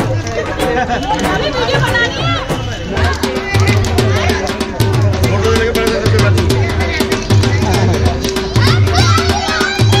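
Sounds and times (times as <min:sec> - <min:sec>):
music with drum beat: 0:00.0 - 0:10.0
people chatting: 0:00.0 - 0:10.0.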